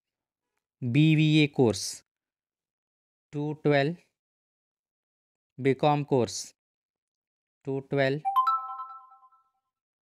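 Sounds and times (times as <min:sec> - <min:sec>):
phone notification chime: 0:08.3 - 0:09.5.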